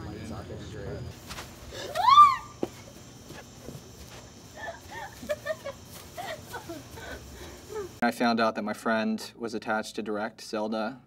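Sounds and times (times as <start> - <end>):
person's high cry: 1.8 - 2.7.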